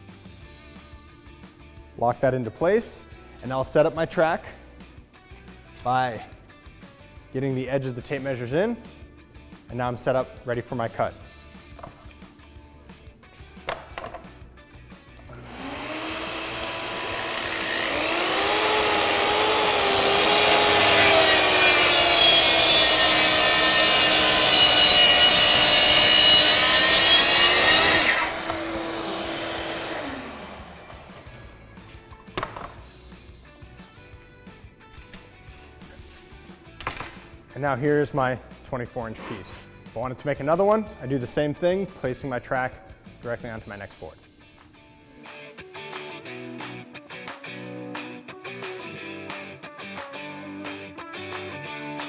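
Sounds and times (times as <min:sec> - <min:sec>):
knocks of saw handling: 0:11.7 - 0:12.1, 0:13.6 - 0:14.4, 0:32.3 - 0:32.8
track saw cutting plywood: 0:15.3 - 0:31.5.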